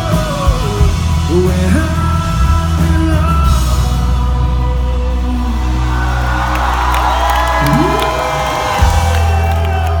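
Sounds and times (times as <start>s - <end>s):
live rock band playing: 0.0s - 10.0s
crowd cheering and whooping: 5.2s - 10.0s.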